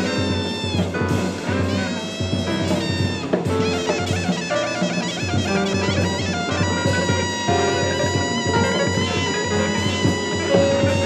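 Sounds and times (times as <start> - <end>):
bass: 0.0 - 11.0
drums: 0.0 - 11.0
wind instrument wailing high notes: 0.0 - 11.0.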